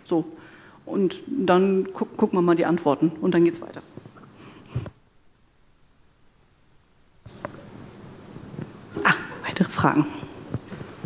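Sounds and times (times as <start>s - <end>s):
microphone handling noise: 7.2s - 9.2s, 10.3s - 11.0s.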